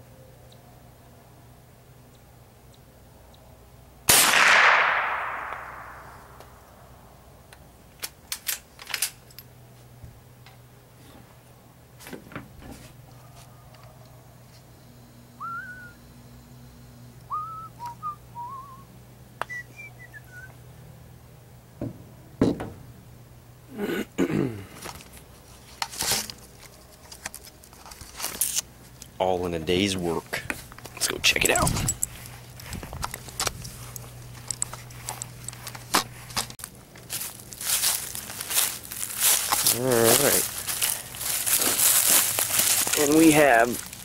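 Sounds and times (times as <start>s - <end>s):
rifle shot with echo: 4.1s - 6.5s.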